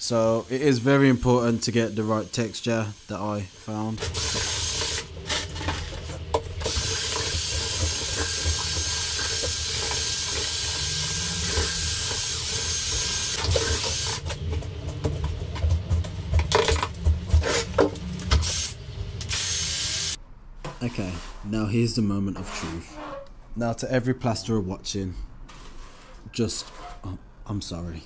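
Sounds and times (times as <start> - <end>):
power drill motor whining: 3.0 - 5.2, 6.6 - 14.4, 18.2 - 20.2.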